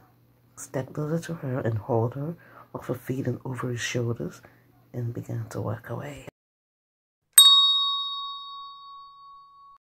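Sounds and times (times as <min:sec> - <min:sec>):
bell-like ding: 0:07.4 - 0:09.8.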